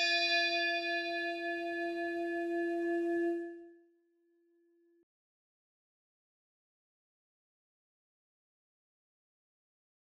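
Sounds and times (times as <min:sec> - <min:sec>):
struck bell tone: 0:00.0 - 0:01.9.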